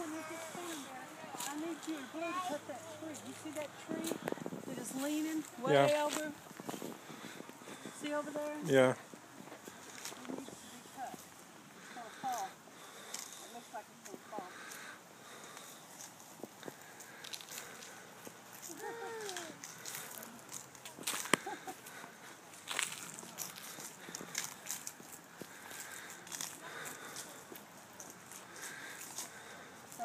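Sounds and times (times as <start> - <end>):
footsteps: 0.0 - 30.0.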